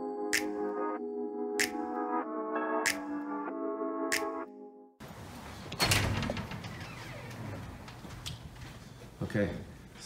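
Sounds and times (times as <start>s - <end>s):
glass door clunk: 5.7s - 7.9s.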